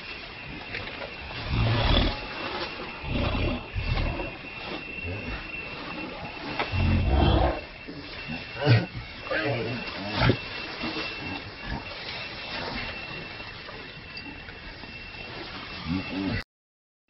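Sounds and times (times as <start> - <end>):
monkeys scuffling on dry leaves: 0.0 - 16.3
low growling: 1.2 - 7.8, 15.8 - 16.4.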